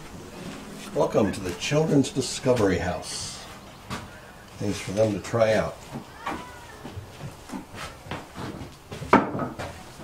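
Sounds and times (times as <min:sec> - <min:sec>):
low steady hiss: 0:00.0 - 0:10.0
footsteps on wooden floorboards: 0:03.4 - 0:04.2, 0:05.7 - 0:10.0.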